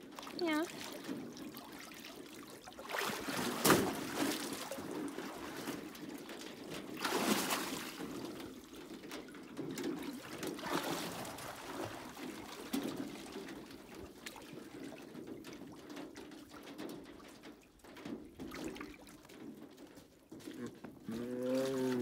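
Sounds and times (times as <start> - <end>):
water sloshing in metal tank: 0.0 - 22.0.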